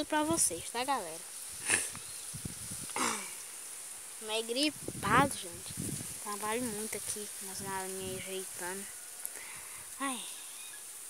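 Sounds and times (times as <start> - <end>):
faint high hiss: 0.0 - 11.0.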